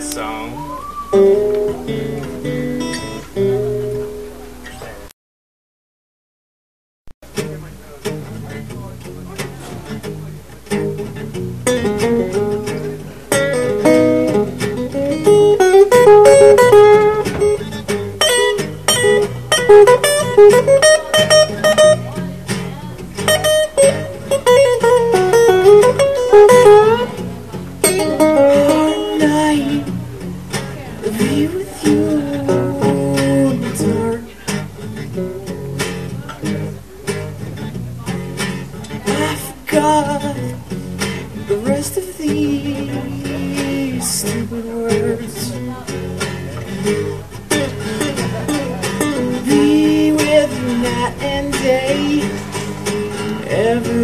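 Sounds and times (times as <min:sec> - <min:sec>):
acoustic guitar strumming chords: 0:00.0 - 0:05.1, 0:07.3 - 0:54.0
lead acoustic guitar picking: 0:00.0 - 0:05.1, 0:07.2 - 0:54.0.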